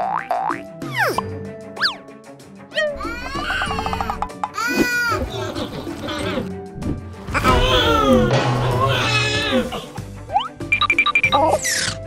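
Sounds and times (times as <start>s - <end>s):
background music: 0.0s - 12.0s
cartoon crying wail: 2.8s - 6.4s, 7.4s - 9.8s.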